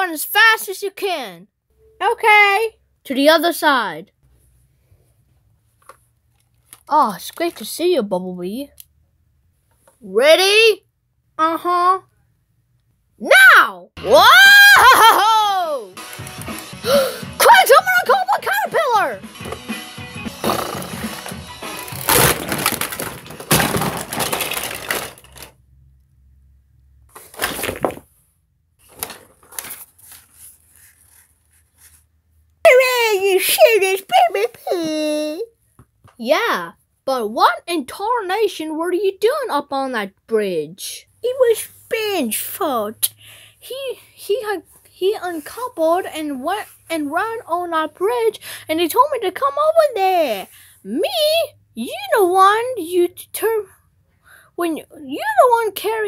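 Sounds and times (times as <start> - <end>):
person talking in high-pitched voice: 0.0 - 4.1, 6.9 - 8.8, 10.0 - 10.8, 11.4 - 12.1, 13.2 - 16.0, 17.4 - 19.2, 32.7 - 35.6, 36.2 - 53.7, 54.6 - 56.0
child wailing: 13.2 - 16.0
paper rustling: 20.4 - 25.5, 27.1 - 28.1, 28.8 - 32.1
faint handling sounds: 28.8 - 32.5.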